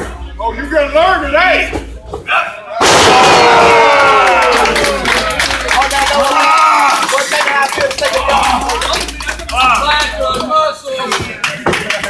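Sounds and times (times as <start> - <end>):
spectators shouting: 2.7 - 7.2.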